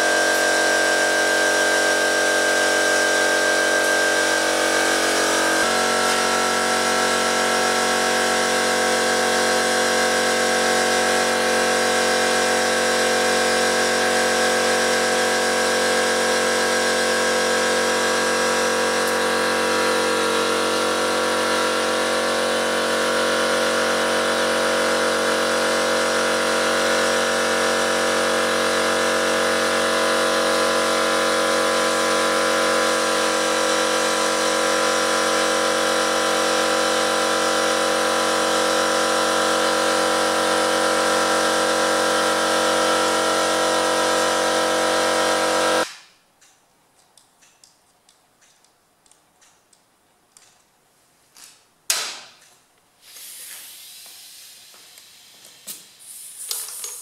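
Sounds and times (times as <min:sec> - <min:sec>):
air compressor running: 0:00.0 - 0:46.0, 0:53.0 - 0:57.0.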